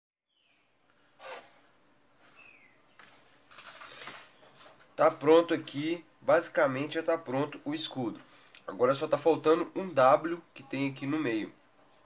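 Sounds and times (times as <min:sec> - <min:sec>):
pencil and ruler scraping paper: 0:01.2 - 0:01.6.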